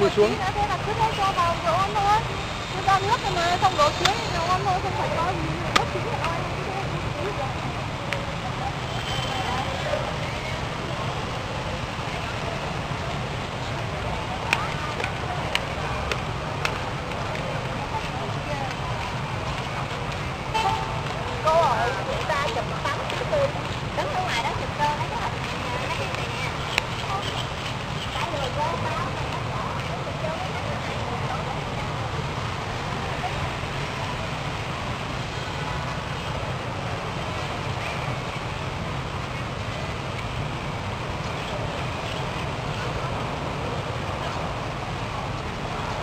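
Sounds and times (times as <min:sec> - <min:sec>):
faint voices: 0:00.0 - 0:46.0
traffic rumble: 0:00.0 - 0:46.0.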